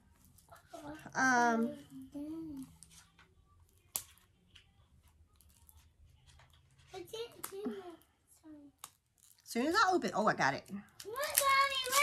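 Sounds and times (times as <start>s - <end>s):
packaging rustling and tearing: 11.0s - 12.0s.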